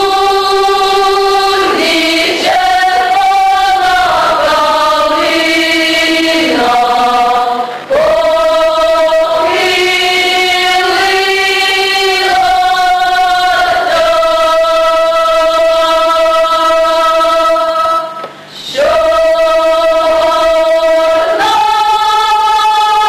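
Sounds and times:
mixed choir singing folk song: 0.0s - 23.0s.

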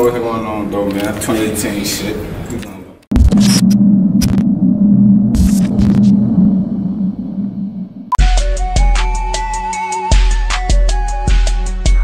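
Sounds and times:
static crackles: 3.1s - 4.6s, 5.3s - 6.2s
loud electrical hum: 3.1s - 8.2s.

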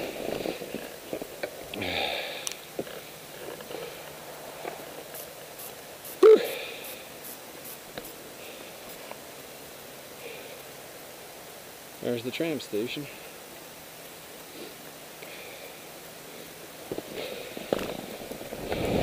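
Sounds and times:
skis sliding on snow: 0.0s - 9.3s, 14.5s - 19.0s
person breathing and sniffing: 6.1s - 7.4s, 14.4s - 17.7s
short loud vocal sound: 6.2s - 6.8s.

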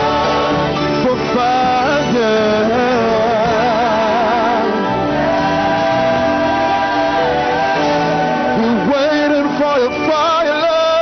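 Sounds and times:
gospel singing voices: 0.0s - 11.0s
live band playing: 0.0s - 11.0s.

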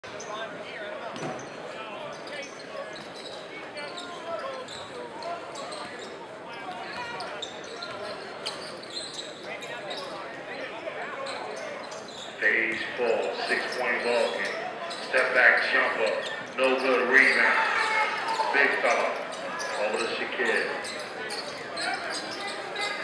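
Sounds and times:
crowd chatter: 0.0s - 23.0s.

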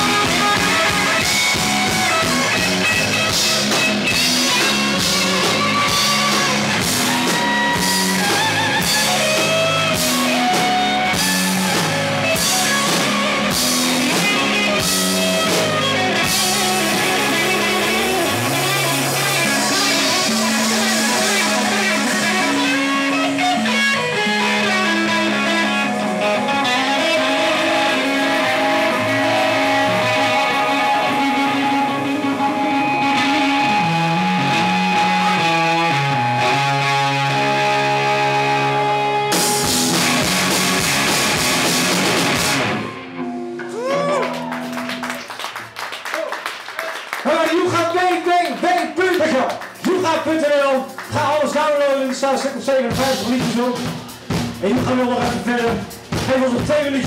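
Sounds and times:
drums and cymbals: 0.0s - 35.4s, 39.2s - 42.8s, 52.8s - 57.0s
bass guitar: 0.0s - 46.3s, 47.3s - 57.0s
electric guitar: 0.0s - 57.0s.

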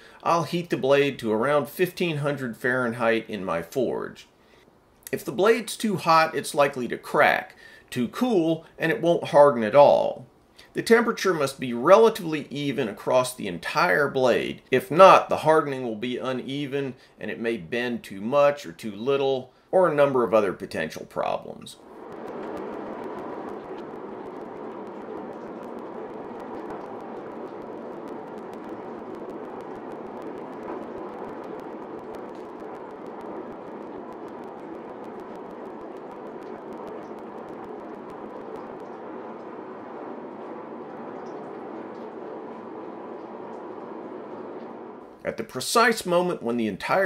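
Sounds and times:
forge burner rushing: 0.0s - 4.0s, 21.2s - 46.8s.

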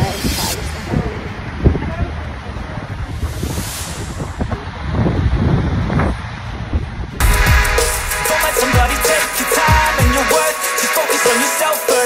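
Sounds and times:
wind buffeting microphone: 0.0s - 8.1s
hip-hop music: 7.2s - 12.0s.

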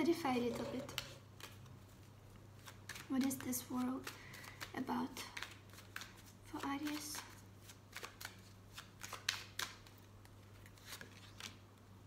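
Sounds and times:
cards being shuffled: 0.1s - 11.7s.

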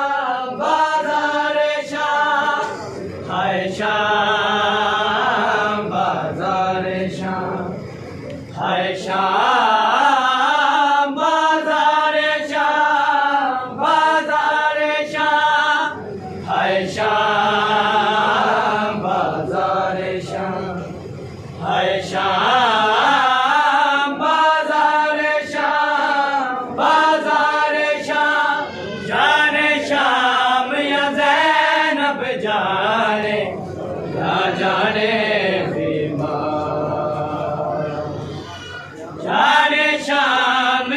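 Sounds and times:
men chanting a lament: 0.0s - 40.9s.

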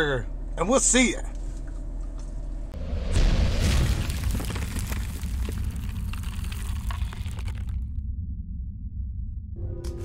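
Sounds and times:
deep rumble: 1.3s - 10.0s
stone-like crackling: 3.0s - 8.0s.

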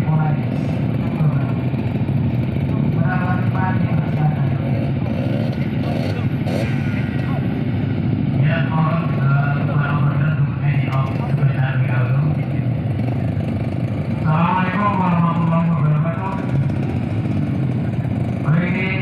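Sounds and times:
voices: 0.0s - 1.9s, 2.5s - 19.0s
dirt bikes idling: 0.0s - 19.0s.

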